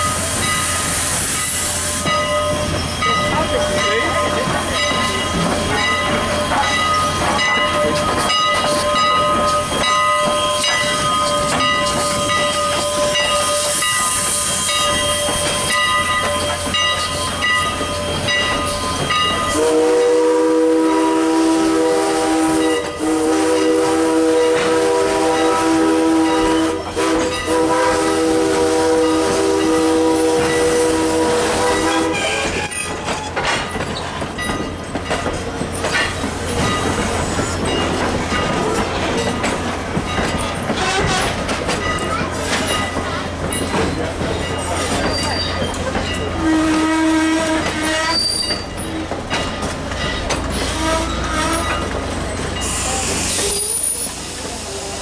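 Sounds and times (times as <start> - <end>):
train coaches rumbling on rails: 0.0 - 55.0
steam locomotive whistle: 8.6 - 32.9, 46.2 - 48.7, 50.5 - 51.9, 52.6 - 55.0.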